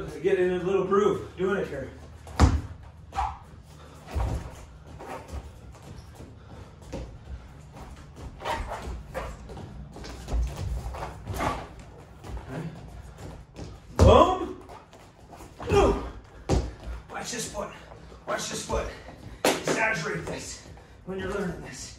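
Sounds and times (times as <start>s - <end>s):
feet stomping on foam mats: 2.1s - 3.4s, 4.0s - 17.2s.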